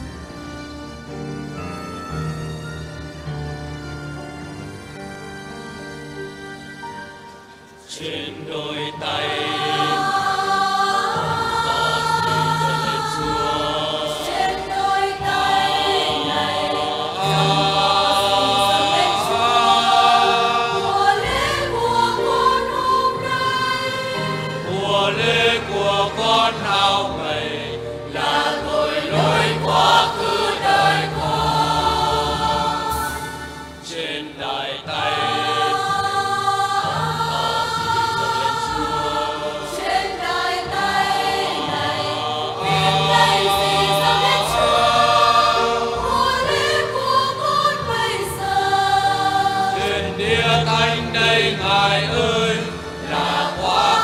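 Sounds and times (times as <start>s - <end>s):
choir singing a hymn: 0.0s - 5.0s, 7.6s - 54.0s.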